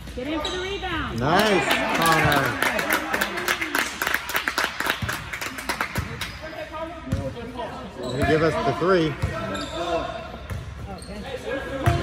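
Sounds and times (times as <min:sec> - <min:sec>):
spectators clapping: 0:01.2 - 0:06.4.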